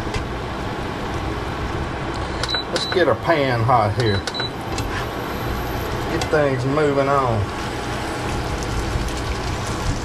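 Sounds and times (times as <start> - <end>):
cooktop control panel beeps: 2.4 - 3.2, 4.0 - 4.6
beef frying in a pan: 7.3 - 10.0.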